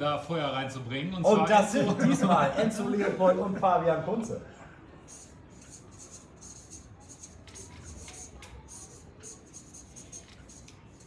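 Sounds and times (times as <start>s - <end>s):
marker pen squeaking on paper: 5.1s - 11.0s.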